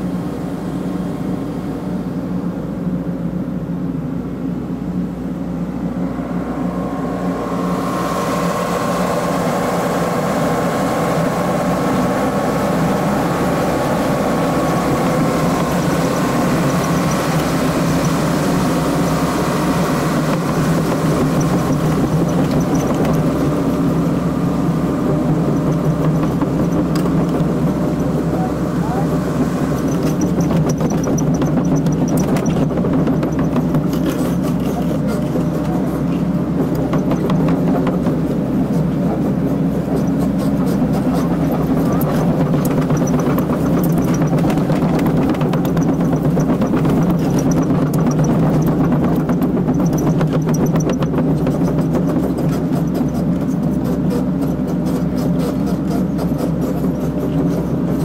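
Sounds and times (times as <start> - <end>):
excavator diesel engine running: 0.0 - 58.0.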